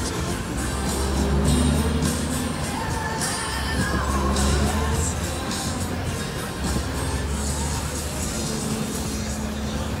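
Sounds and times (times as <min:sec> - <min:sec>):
background voices: 0:00.0 - 0:10.0.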